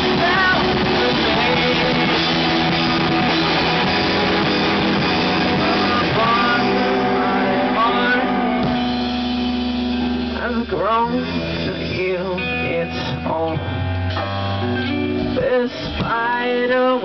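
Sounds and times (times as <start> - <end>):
man singing: 0.0 - 8.8, 10.2 - 13.9, 15.2 - 17.0
drums: 0.0 - 17.0
electric guitars: 0.0 - 17.0.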